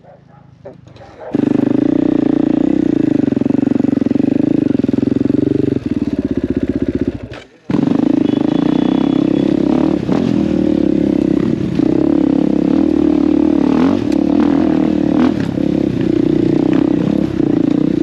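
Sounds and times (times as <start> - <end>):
motorcycle engine running hard: 1.3 - 18.0.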